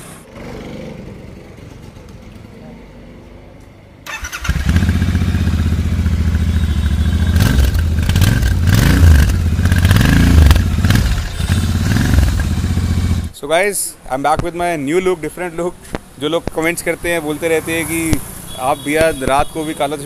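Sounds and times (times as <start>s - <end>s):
motorcycle engine revving: 0.0s - 2.4s, 4.1s - 13.4s
motorcycle engine starting: 0.0s - 2.6s, 4.0s - 13.4s
motorcycle engine idling: 4.4s - 13.3s.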